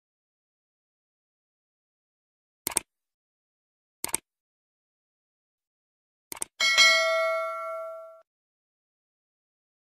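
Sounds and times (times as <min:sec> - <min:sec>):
notification bell ding: 0:06.6 - 0:08.2.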